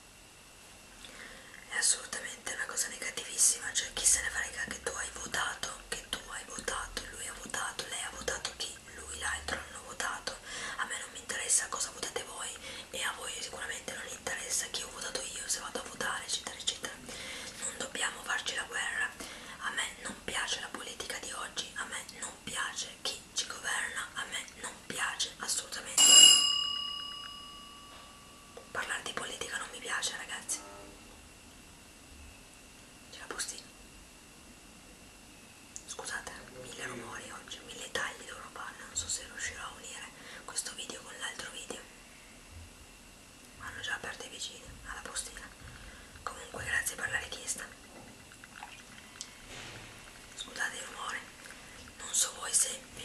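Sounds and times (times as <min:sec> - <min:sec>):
woman whispering: 0:01.6 - 0:26.0, 0:28.6 - 0:30.6, 0:33.1 - 0:33.7, 0:35.9 - 0:41.9, 0:43.6 - 0:47.8, 0:50.4 - 0:51.3, 0:51.9 - 0:53.0
sharp bell-like ring: 0:26.0 - 0:28.5.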